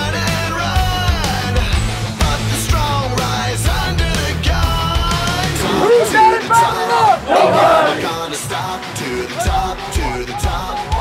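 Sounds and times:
players shouting together: 5.5s - 8.4s, 9.2s - 11.0s.

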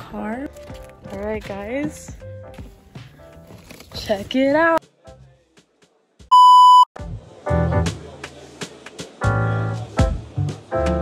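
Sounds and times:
electronic bleep: 6.3s - 6.9s.

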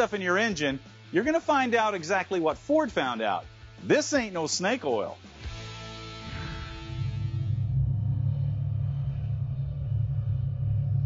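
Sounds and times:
deep rumble: 6.2s - 11.0s.

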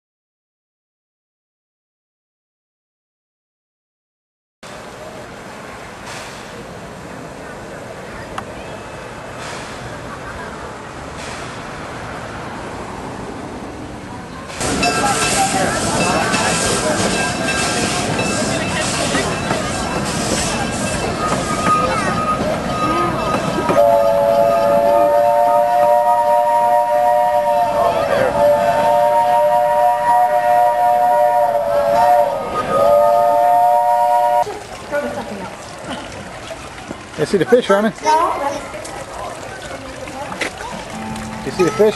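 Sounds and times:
steam locomotive hissing and pulsing: 4.7s - 13.7s, 14.4s - 34.5s
locomotive chime whistle: 14.6s - 34.4s, 40.9s - 41.9s.

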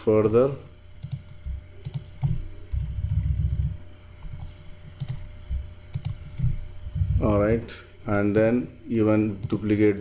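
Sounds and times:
keyboard and mouse clicks: 1.0s - 5.3s, 5.9s - 7.6s, 8.3s - 8.6s, 9.4s - 9.7s.

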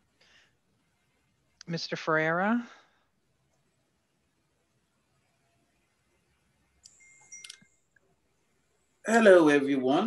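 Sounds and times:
thin high tone: 6.9s - 7.8s.

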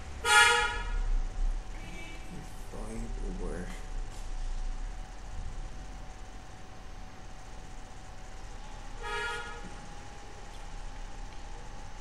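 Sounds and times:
vehicle horn honk: 0.2s - 1.0s, 1.8s - 2.3s, 9.0s - 9.6s.

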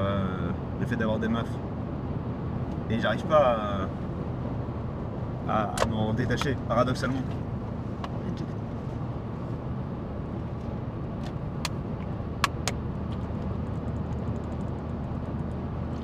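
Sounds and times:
car cabin road and engine rumble: 0.0s - 16.0s.

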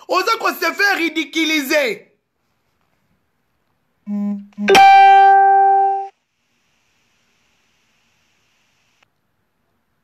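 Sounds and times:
single struck ringing note: 4.7s - 6.1s.

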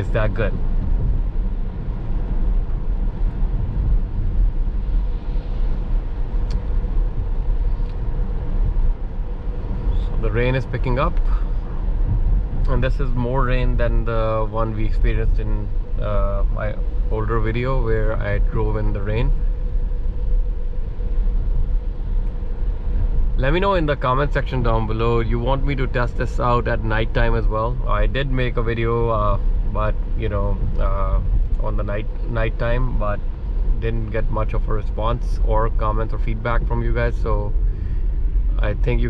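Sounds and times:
faint steady hum: 0.0s - 39.0s
tyre and road rumble on wet road: 0.0s - 39.0s.

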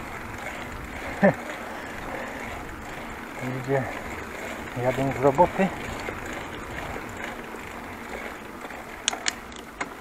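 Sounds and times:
rushing wind: 0.0s - 9.5s
bicycle tyre noise: 0.0s - 10.0s.

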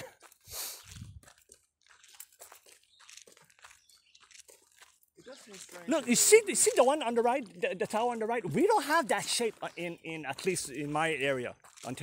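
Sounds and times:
crunching footsteps on trail: 0.0s - 12.0s.

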